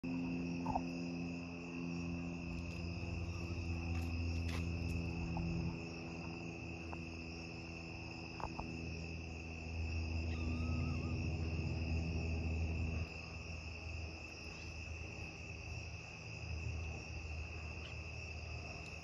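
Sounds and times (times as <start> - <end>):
crickets chirping: 0.0 - 19.0
low steady hum: 0.0 - 19.0.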